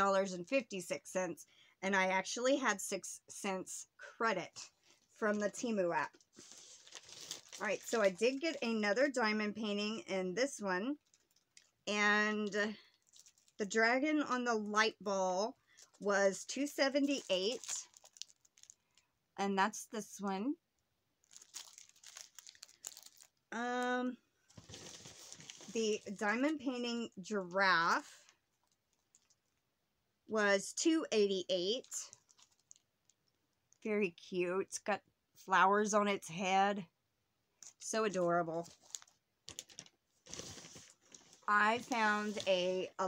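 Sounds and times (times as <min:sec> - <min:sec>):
plastic packaging crinkling: 0:04.8 - 0:09.2, 0:10.9 - 0:13.7, 0:16.8 - 0:19.1, 0:21.2 - 0:23.5, 0:24.4 - 0:26.6, 0:28.5 - 0:29.6, 0:31.6 - 0:33.4, 0:38.6 - 0:42.9.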